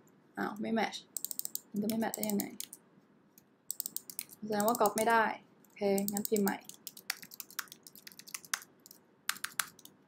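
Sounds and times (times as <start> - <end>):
computer keyboard key clicks: 1.2 - 2.8, 3.7 - 5.0, 6.0 - 9.9.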